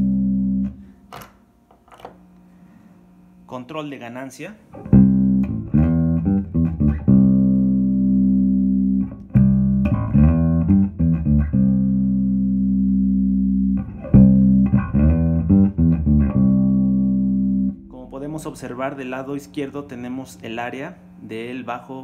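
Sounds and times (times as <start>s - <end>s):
electric bass guitar notes: 0.0s - 0.9s, 4.7s - 21.3s.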